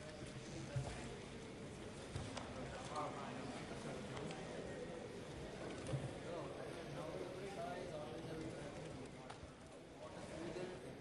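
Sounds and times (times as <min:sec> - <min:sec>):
faint murmur of voices: 0:00.0 - 0:11.0.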